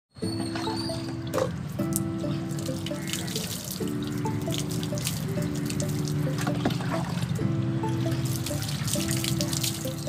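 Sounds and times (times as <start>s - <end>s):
background music with held notes: 0.1s - 10.0s
water splashing into a bucket: 1.4s - 7.4s, 8.0s - 10.0s.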